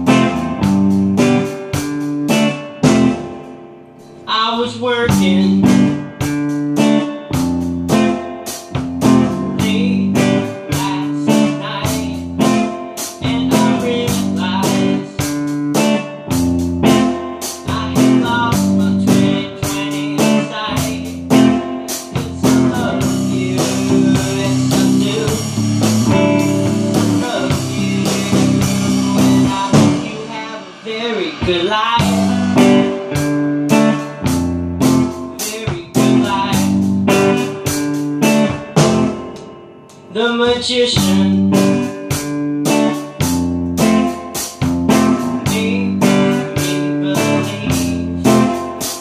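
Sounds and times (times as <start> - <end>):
band playing instrumental: 0.0 - 49.0
guitar strumming: 0.0 - 49.0.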